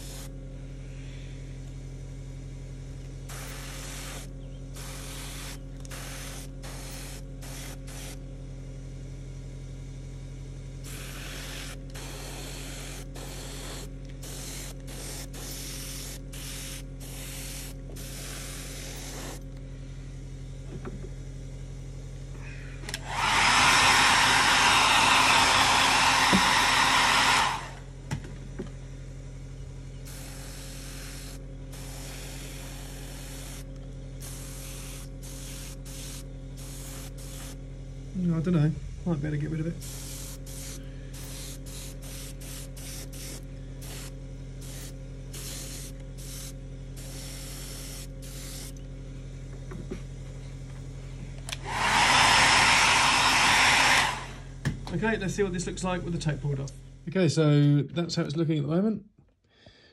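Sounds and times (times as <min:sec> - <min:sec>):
airbrush spraying hiss: 0:00.0 - 0:00.3, 0:03.3 - 0:08.2, 0:10.8 - 0:19.5, 0:23.1 - 0:27.8, 0:30.0 - 0:37.6, 0:39.7 - 0:48.8, 0:51.6 - 0:54.4
loud blast of air: 0:03.3 - 0:08.2, 0:10.8 - 0:19.4, 0:23.0 - 0:27.9, 0:30.1 - 0:33.6, 0:39.8 - 0:48.6, 0:51.6 - 0:54.5
low hum: 0:27.6 - 0:42.2.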